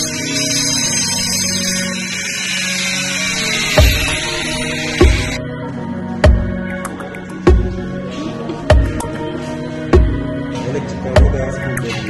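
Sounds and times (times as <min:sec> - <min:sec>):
angle grinder cutting tile: 0:00.0 - 0:05.4
background music: 0:00.0 - 0:12.0.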